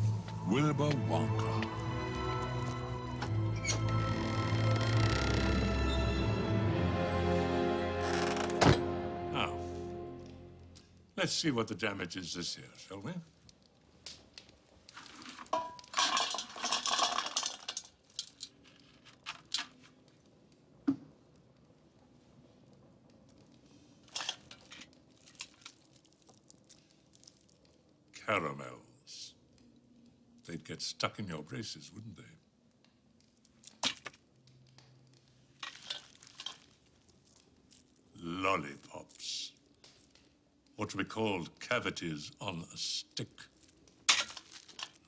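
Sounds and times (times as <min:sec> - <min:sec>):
candy clattering onto metal platter: 0:15.0 - 0:19.8, 0:35.6 - 0:38.2, 0:43.5 - 0:45.0
candy wrapper crinkling: 0:24.3 - 0:28.1, 0:33.2 - 0:40.7, 0:43.0 - 0:45.0.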